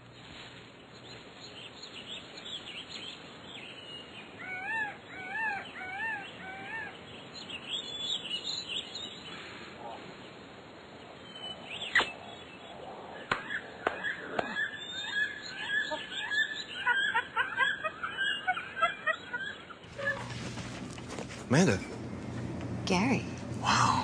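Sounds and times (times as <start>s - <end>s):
birds chirping: 0.8s - 24.0s
rising and falling bird calls: 1.7s - 9.4s, 11.0s - 20.9s.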